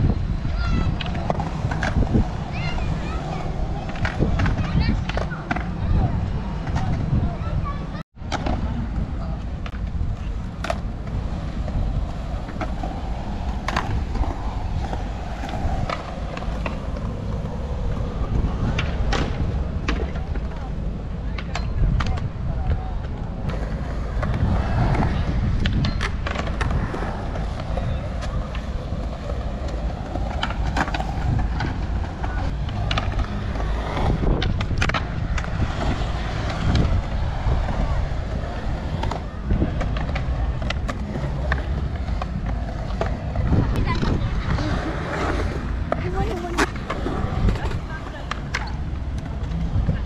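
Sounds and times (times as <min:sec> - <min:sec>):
skateboard wheels rolling on concrete: 0:00.0 - 0:50.0
skateboards clacking on ground: 0:00.5 - 0:50.0.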